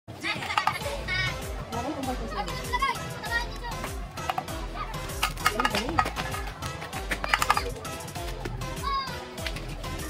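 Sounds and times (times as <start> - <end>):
music: 0.1 - 10.0
children shouting: 6.2 - 9.4.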